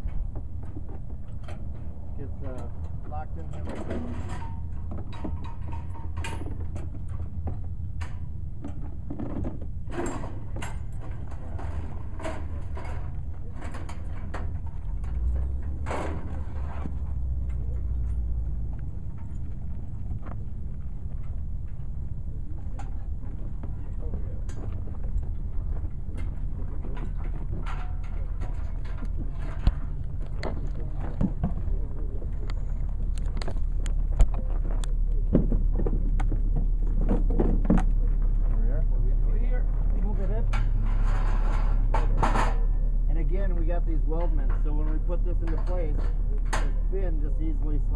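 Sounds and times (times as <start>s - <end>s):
steady low rumble: 0.0s - 47.9s
steel hitch parts clanking: 0.0s - 47.9s.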